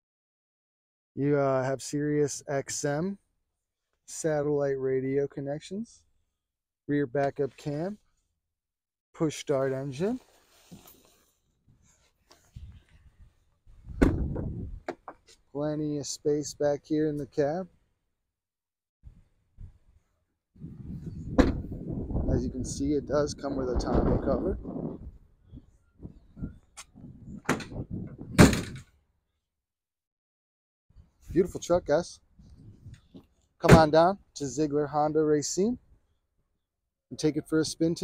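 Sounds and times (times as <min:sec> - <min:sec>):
handling rustle: 0:09.9 - 0:13.2
tailgate banging open: 0:13.9 - 0:14.6, 0:21.3 - 0:21.8, 0:27.4 - 0:28.8
truck door thump: 0:13.9 - 0:15.0, 0:21.3 - 0:21.8, 0:27.4 - 0:28.8.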